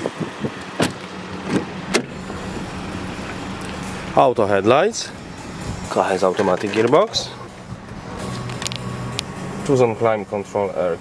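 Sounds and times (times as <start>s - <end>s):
steady low hum: 1.1s - 9.7s.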